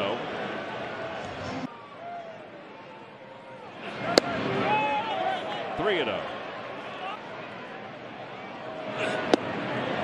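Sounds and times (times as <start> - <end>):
ballpark crowd noise: 0.0 - 10.0
fans shouting: 0.0 - 10.0
baseball smacking into mitt: 9.3 - 9.5.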